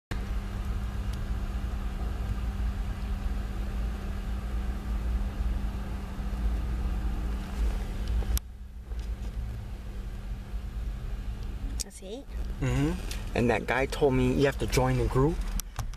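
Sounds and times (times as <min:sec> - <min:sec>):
constant hum: 0:00.1 - 0:15.9
car interior rumble: 0:00.2 - 0:15.9.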